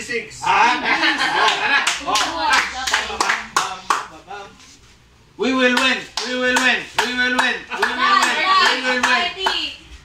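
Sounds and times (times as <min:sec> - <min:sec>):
sharp handclaps: 0:01.5 - 0:04.1, 0:05.8 - 0:09.6
overlapping voices calling out: 0:05.4 - 0:09.8.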